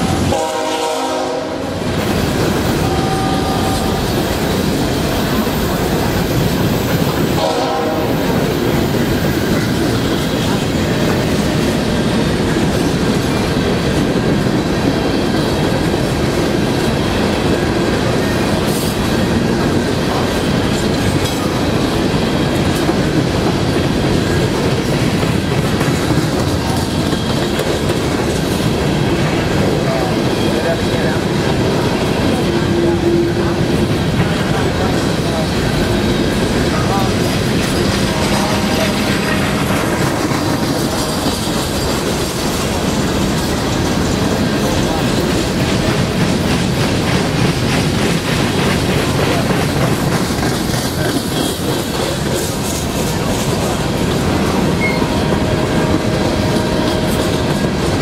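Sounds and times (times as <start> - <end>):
train horn: 0.0 - 1.9, 2.8 - 4.2, 7.3 - 8.5, 32.3 - 33.6, 37.9 - 40.0, 54.8 - 57.7
freight train rumbling past: 0.0 - 58.0
wheels clattering over rail joints: 33.7 - 58.0.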